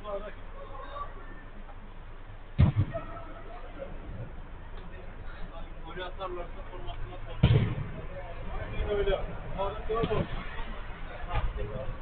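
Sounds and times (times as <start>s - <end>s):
distant voices: 0.0s - 12.0s.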